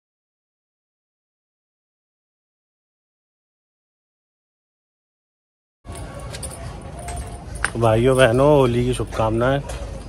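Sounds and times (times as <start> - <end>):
street background noise: 5.8 - 10.0
man speaking: 7.7 - 9.8.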